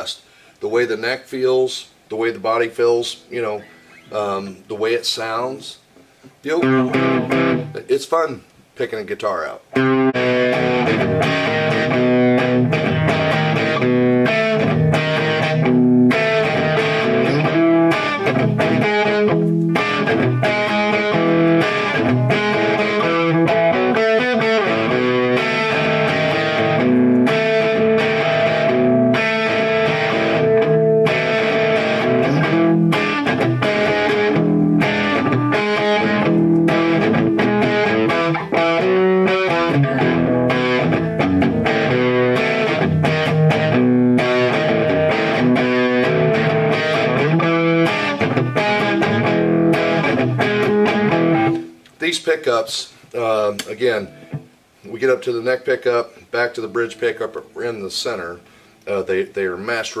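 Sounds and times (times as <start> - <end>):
electric guitar through amplifier: 3.0 - 8.0, 9.7 - 52.5, 53.1 - 55.4.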